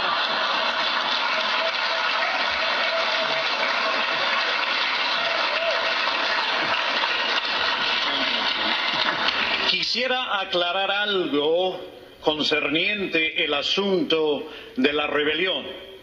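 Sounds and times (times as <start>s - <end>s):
laughter: 0.0s - 2.6s, 6.4s - 9.7s
audience applauding: 0.0s - 9.8s.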